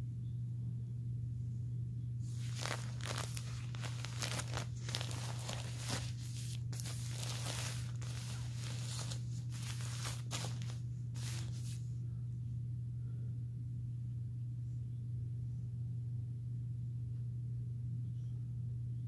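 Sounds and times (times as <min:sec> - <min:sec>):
steady low hum: 0:00.0 - 0:19.0
plastic diaper crinkling: 0:02.3 - 0:11.8.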